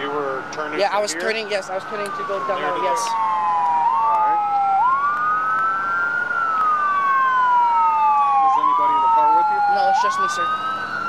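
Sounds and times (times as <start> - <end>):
emergency sirens wailing: 0.0 - 11.0.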